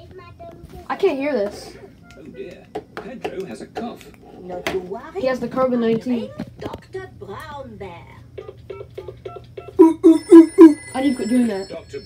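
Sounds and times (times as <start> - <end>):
cartoon telephone ringing: 9.6 - 12.0.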